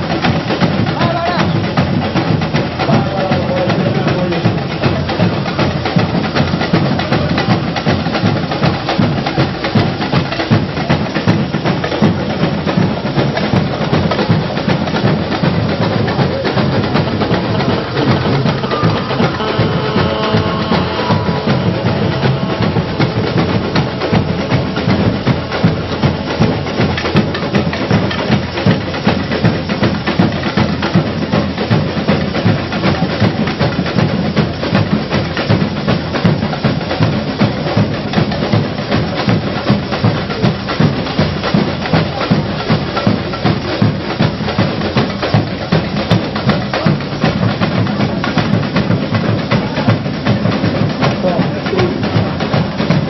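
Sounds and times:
samba drums and percussion: 0.0s - 53.0s.

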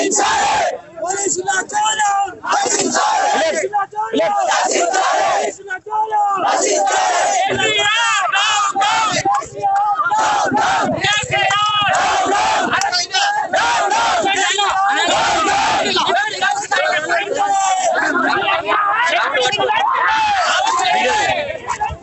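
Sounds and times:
crowd of men shouting: 0.0s - 22.0s.

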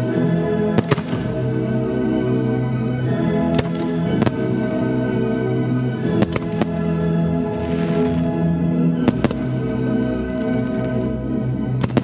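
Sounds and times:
loud classical music: 0.0s - 12.0s
firework shells bursting: 0.8s - 1.5s, 3.5s - 4.8s, 6.1s - 8.3s, 9.1s - 11.0s.

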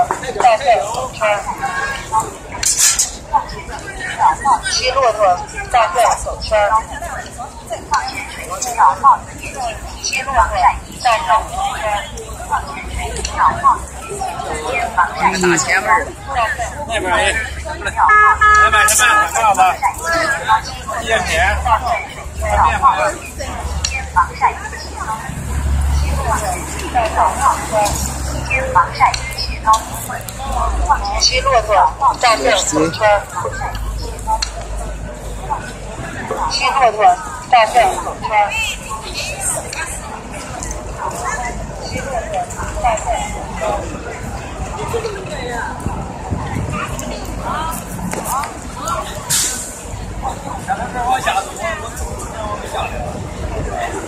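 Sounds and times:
bus engine idling: 0.0s - 54.0s
people's voices: 0.0s - 54.0s
wind rumble on microphone: 43.8s - 49.2s
air brakes hissing: 49.3s - 49.8s.

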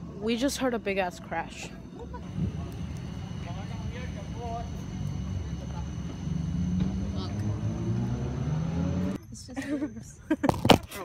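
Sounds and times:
car engine revving: 6.2s - 9.2s.

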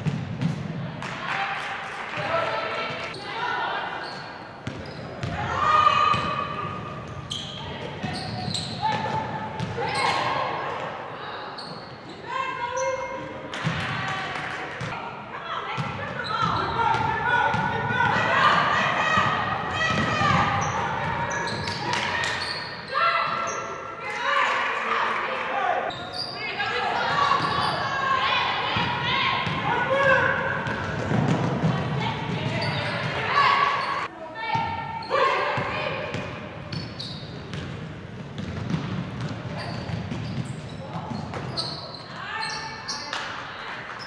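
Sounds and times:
basketball bouncing on wooden court: 0.0s - 0.6s, 4.6s - 5.4s, 6.1s - 6.4s, 15.8s - 22.2s, 28.8s - 33.2s, 35.6s - 41.6s
people shouting and calling out: 12.2s - 30.8s.

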